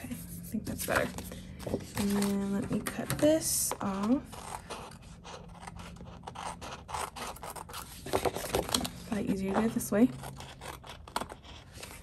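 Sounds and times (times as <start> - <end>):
scissors snipping paper: 3.7 - 12.0.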